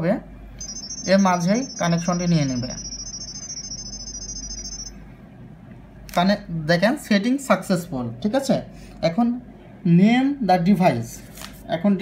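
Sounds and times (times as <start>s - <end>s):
steady low hum: 0.0s - 10.1s
high-pitched warbling tones: 0.6s - 5.0s.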